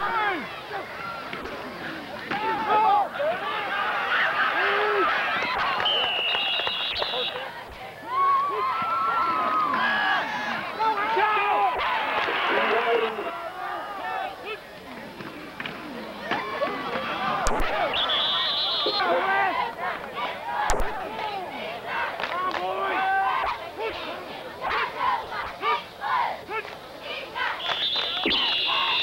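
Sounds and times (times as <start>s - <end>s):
crowd shouting and cheering: 0.0s - 29.0s.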